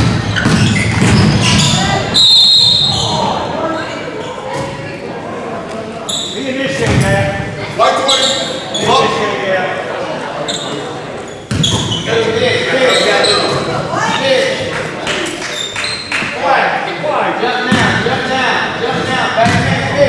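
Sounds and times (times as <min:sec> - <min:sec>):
basketball bouncing on wooden floor: 0:00.0 - 0:01.8, 0:11.5 - 0:11.9
voices echoing in gym: 0:00.0 - 0:20.0.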